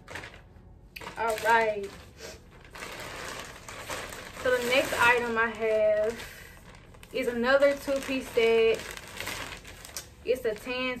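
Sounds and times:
plastic bags rustling and crinkling: 0:00.0 - 0:11.0.

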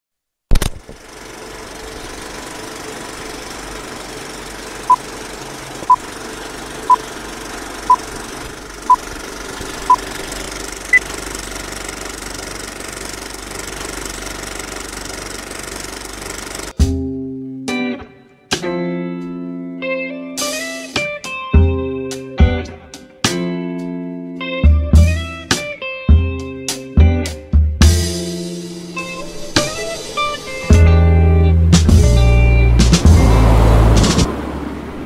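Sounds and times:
sharp click: 0:00.5 - 0:00.9
film projector running with crackle: 0:00.5 - 0:16.8.

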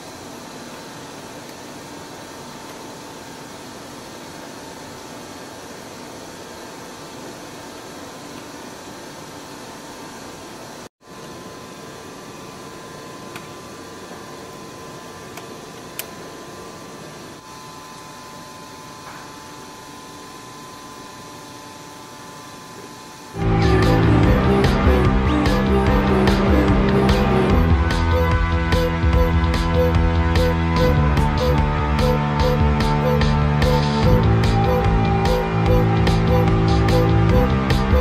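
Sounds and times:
ventilation hiss and hum: 0:00.0 - 0:38.0
loud music: 0:23.4 - 0:38.0.

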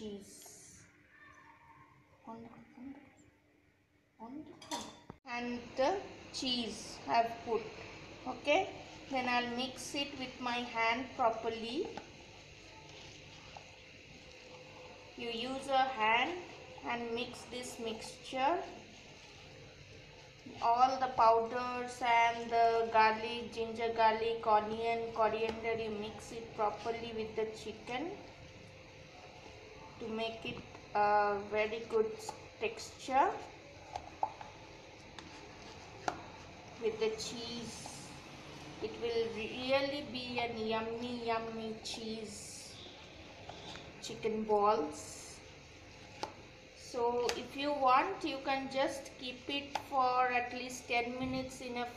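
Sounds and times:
hand mixing paste in a bowl: 0:33.1 - 0:42.4.

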